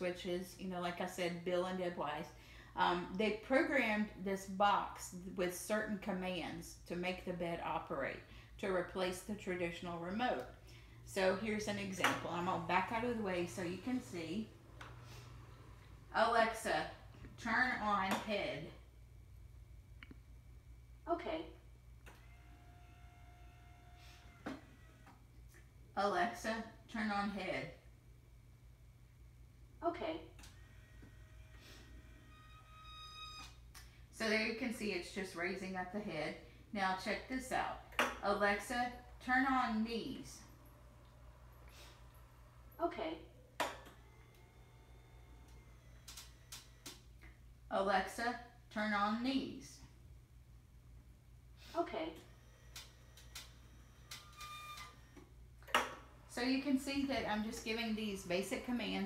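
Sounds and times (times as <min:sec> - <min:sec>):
electric bed motor whine: 0:21.7 - 0:25.9, 0:30.3 - 0:33.8, 0:38.3 - 0:47.5, 0:51.6 - 0:59.0.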